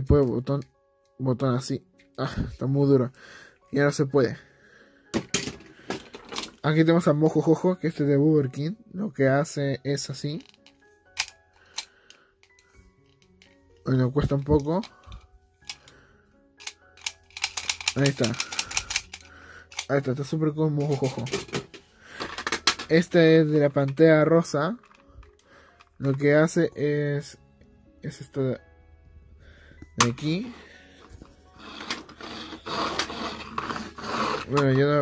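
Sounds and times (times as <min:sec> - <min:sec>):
plastic toy mechanism clicking: 0:10.4 - 0:13.5, 0:16.6 - 0:19.9
plastic toy rubbing and rattling: 0:16.6 - 0:20.2, 0:20.8 - 0:23.0, 0:24.7 - 0:26.2, 0:31.0 - 0:35.0.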